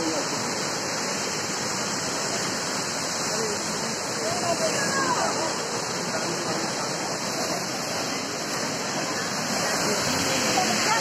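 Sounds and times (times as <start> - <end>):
waterfall rushing over rocks: 0.0 - 11.0
voices talking: 3.2 - 11.0.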